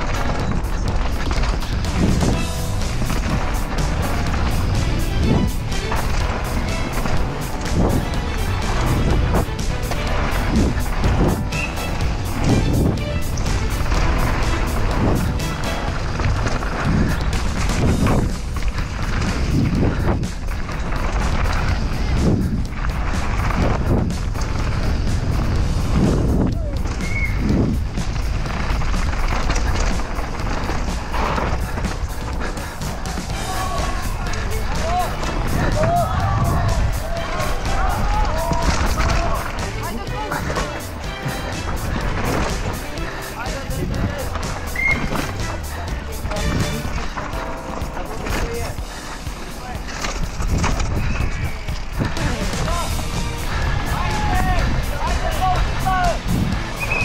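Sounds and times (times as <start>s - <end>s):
background music: 0.0s - 57.0s
bike knocks and rattles: 0.0s - 57.0s
wind and tyre noise: 0.0s - 57.0s.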